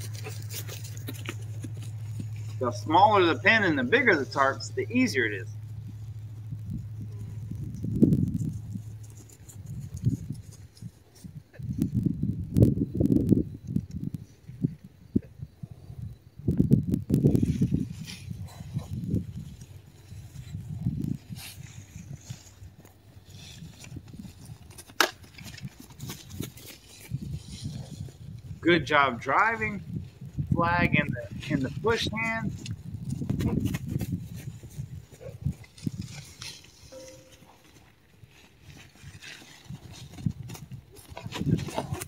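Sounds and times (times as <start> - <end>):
horse hooves thudding on grass: 0.0 - 14.6, 16.8 - 28.6, 31.1 - 42.0.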